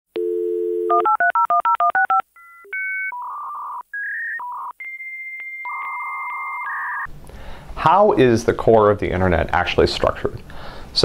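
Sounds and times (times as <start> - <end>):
dial tone: 0.2 - 7.1.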